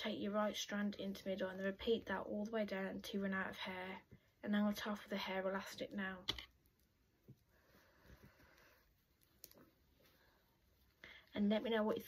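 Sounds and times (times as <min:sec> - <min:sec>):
soft rustling of hands: 0:06.6 - 0:12.0.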